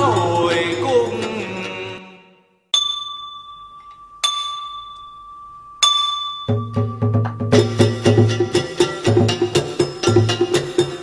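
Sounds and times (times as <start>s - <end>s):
small metal bell ringing: 2.7s - 7.0s.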